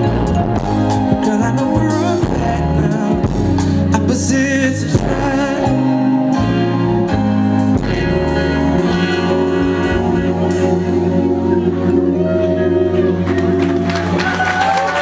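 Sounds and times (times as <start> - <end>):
live band music: 0.0 - 15.0.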